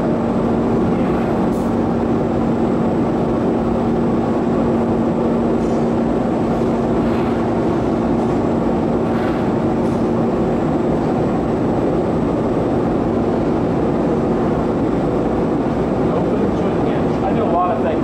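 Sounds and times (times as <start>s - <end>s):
gas burner and blower rushing: 0.0s - 18.0s.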